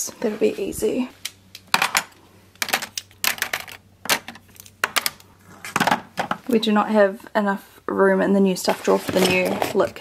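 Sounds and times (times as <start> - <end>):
plastic makeup tubes clattering: 1.7 - 6.5.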